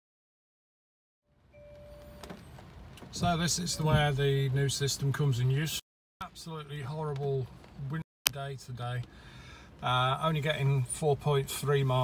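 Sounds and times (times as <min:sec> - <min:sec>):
short steady tone: 0:01.5 - 0:02.3.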